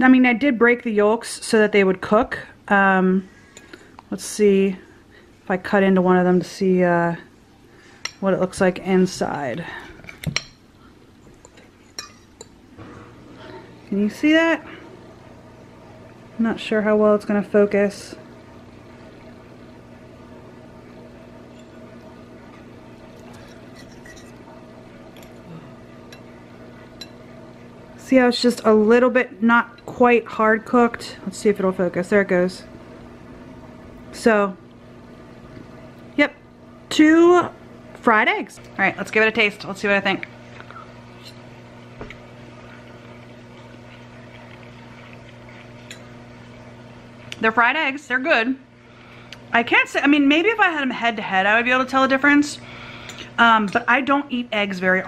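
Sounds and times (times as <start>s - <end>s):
steady low hum: 0.0s - 55.0s
quiet chewing: 40.5s - 40.9s, 42.1s - 46.1s.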